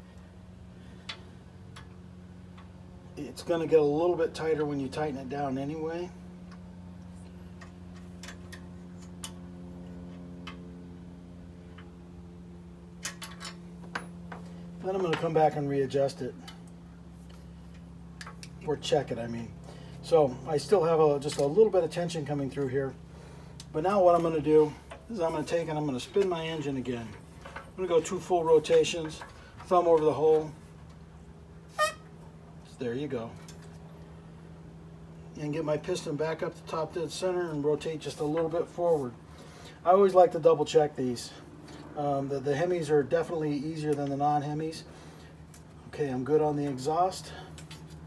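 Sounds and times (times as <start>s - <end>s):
steady low hum: 0.0s - 48.0s
high squeak of escaping air: 31.7s - 32.1s.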